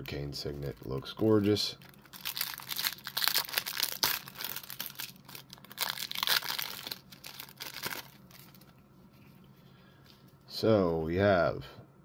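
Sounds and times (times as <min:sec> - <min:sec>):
plastic wrapper crinkling: 0:00.0 - 0:09.4.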